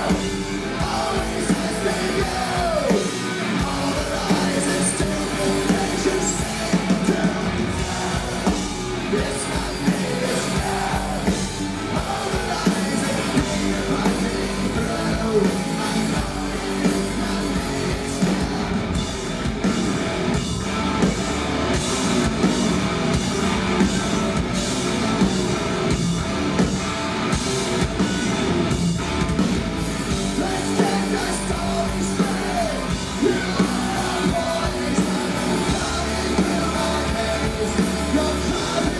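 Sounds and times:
rock band playing live: 0.0 - 38.9
person singing: 30.3 - 38.9.

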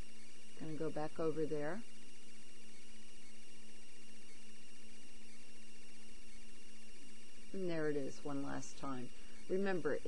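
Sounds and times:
electrical hum with hiss: 0.0 - 10.0.

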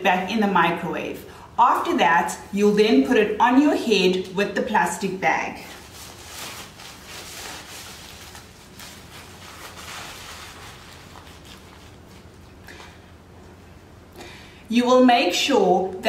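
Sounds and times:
fabric cap rustling: 5.6 - 13.0.

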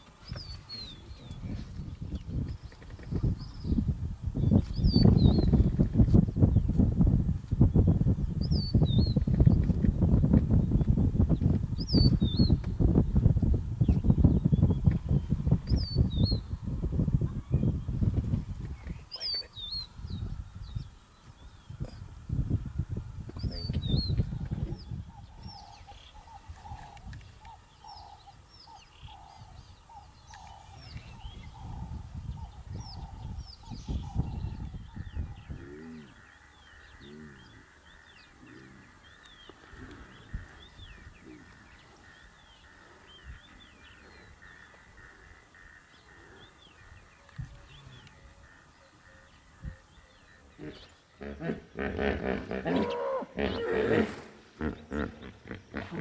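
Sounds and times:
birds chirping and calling: 0.0 - 56.0
wind buffeting microphone: 0.1 - 56.0
repeated bird call: 24.8 - 56.0
short low rising and falling calls: 47.6 - 56.0.

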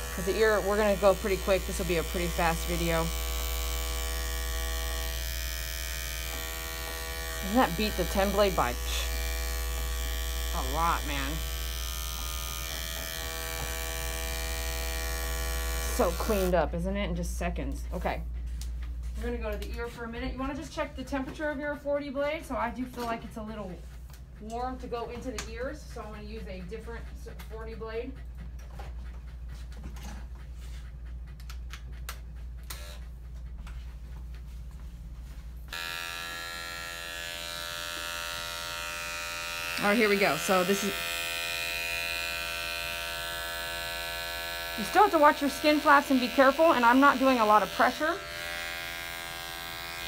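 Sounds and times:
electric dog clipper buzzing: 0.0 - 16.6, 32.6 - 33.0, 35.7 - 50.0.

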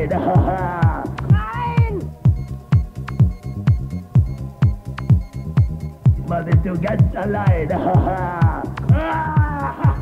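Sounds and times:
kick drum beat: 0.0 - 10.0
hi-hat ticks: 2.3 - 7.4.

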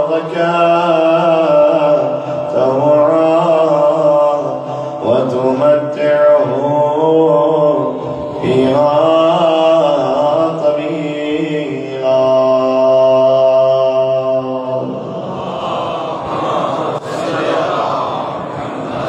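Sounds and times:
man chanting through amplification: 0.0 - 15.2.

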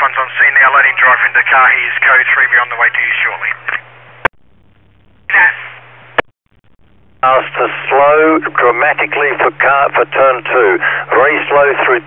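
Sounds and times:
radio transmission burst: 0.0 - 3.8, 5.3 - 5.8, 7.2 - 12.0
radio static hiss and hum: 0.0 - 12.0
radio squelch click: 3.6 - 3.9.

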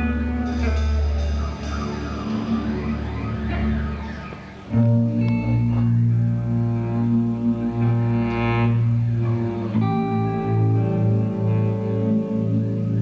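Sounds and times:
electric bass guitar: 0.0 - 13.0
saxophone notes: 0.0 - 13.0.

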